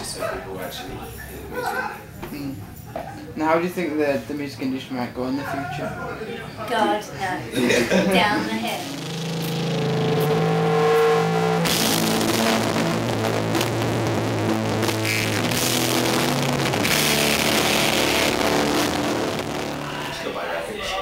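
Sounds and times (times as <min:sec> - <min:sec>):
rock band playing live: 0:08.7 - 0:20.1.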